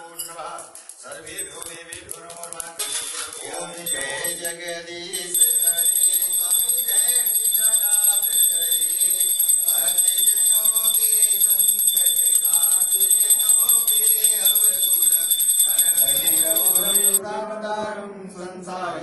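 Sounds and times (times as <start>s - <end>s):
hand bell ringing rapidly: 1.4s - 17.2s
voices chanting a prayer: 2.8s - 17.2s.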